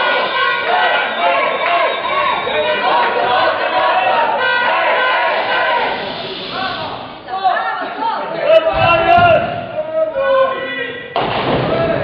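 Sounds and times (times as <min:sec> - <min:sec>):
chatter in a large hall: 0:00.0 - 0:12.0.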